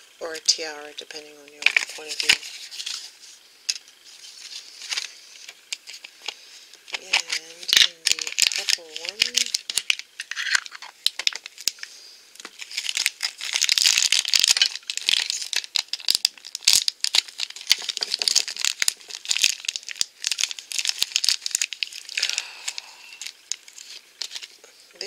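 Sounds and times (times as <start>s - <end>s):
plastic bag crinkling and tearing: 1.6s - 24.6s.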